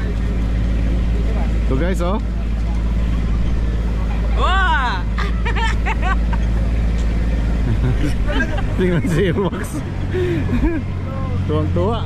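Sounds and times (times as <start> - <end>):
small vehicle engine running: 0.0 - 12.0.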